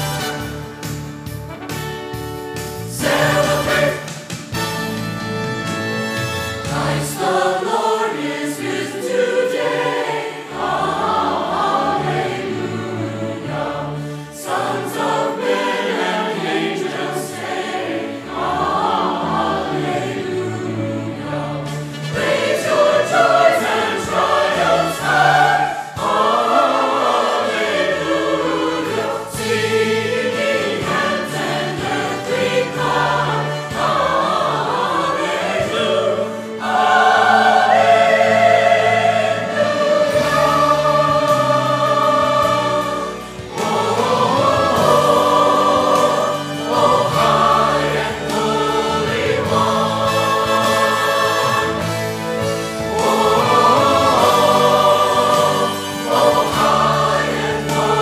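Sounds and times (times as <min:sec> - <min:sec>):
choir singing a hymn: 0:02.7 - 0:04.9, 0:05.6 - 0:58.0.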